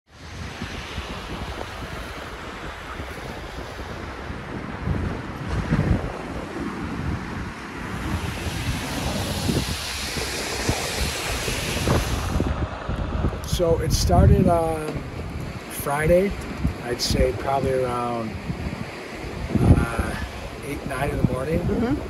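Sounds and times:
wind buffeting microphone: 0.1 - 22.0.

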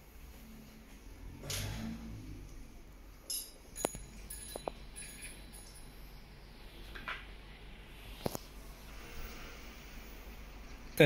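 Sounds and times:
small metal parts clicking and clinking: 3.2 - 6.0.

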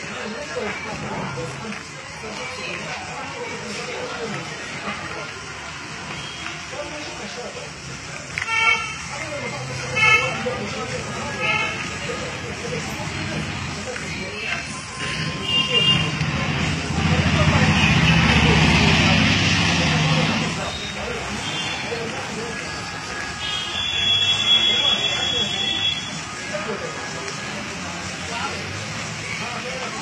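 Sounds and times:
people talking: 0.0 - 30.0
loud machine noise: 16.0 - 20.8.

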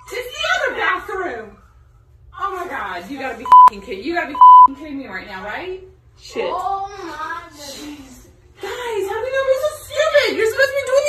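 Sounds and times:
censor bleeps: 3.5 - 3.8, 4.4 - 4.8.

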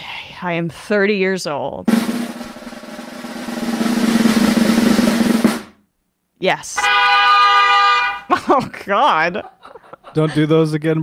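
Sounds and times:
snare drum roll: 1.9 - 5.8.

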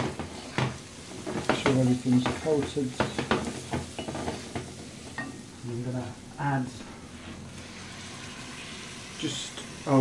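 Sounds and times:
meat sizzling in a pot: 0.0 - 10.0.

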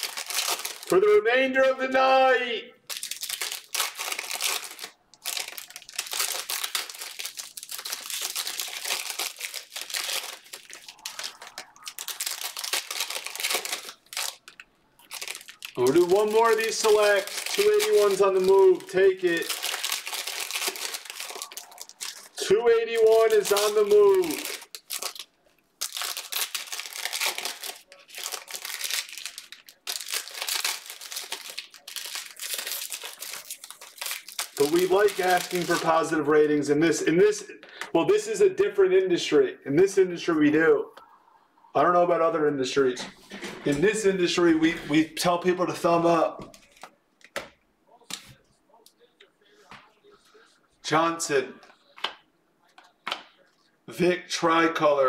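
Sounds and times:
foil wrappers crinkling: 0.0 - 1.0, 2.9 - 36.1.

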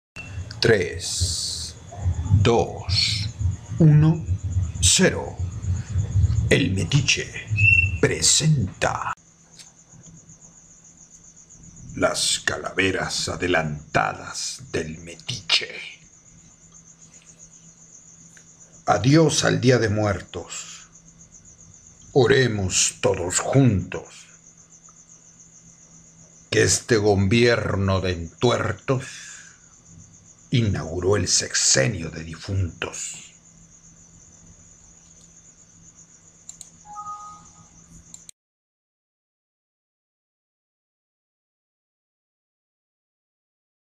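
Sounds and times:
low hum: 0.2 - 9.2
faint low hum: 0.2 - 38.3
cricket chirping: 0.2 - 38.4
two-note tone: 36.9 - 37.6.

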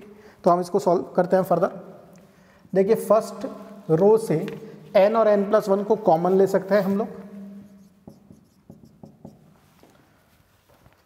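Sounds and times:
marker writing on whiteboard: 6.8 - 9.9.

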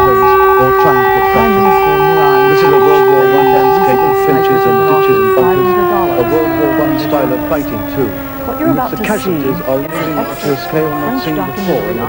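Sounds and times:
loud held tone sliding down: 0.0 - 12.0
person talking: 1.0 - 12.0.

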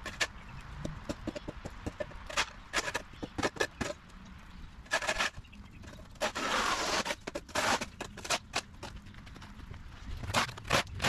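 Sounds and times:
shovel scraping concrete: 4.9 - 8.7, 10.2 - 11.0.

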